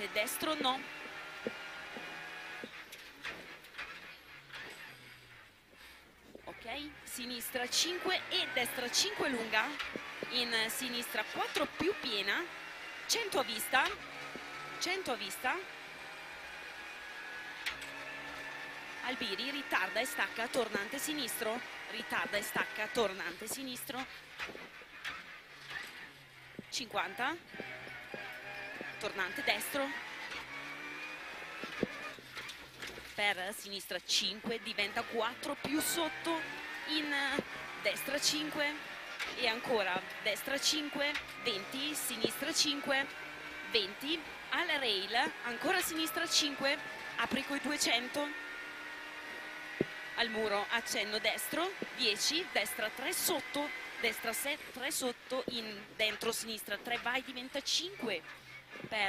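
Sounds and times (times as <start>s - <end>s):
car engine from inside cabin: 0.0s - 33.3s, 34.2s - 59.0s.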